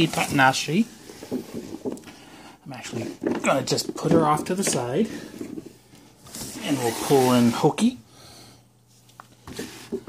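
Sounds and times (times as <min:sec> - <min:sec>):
faint breathing: 0:02.0 - 0:02.7, 0:08.0 - 0:08.8.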